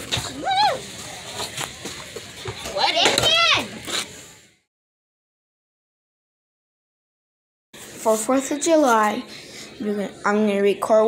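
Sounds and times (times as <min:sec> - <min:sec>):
children's voices outdoors: 0:00.2 - 0:04.0, 0:07.9 - 0:11.0.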